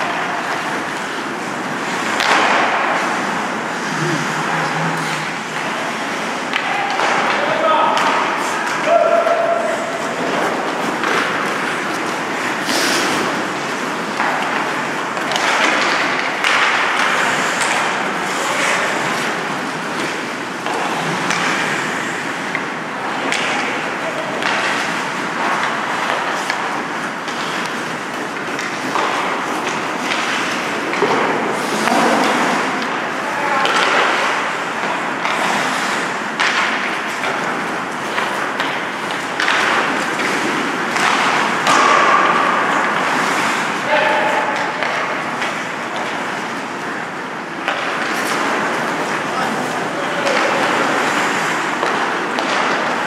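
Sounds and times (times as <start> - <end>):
hockey sticks and puck knocking: 0.0 - 21.8, 22.4 - 46.8, 47.5 - 53.0
skates scraping on ice: 0.0 - 53.0.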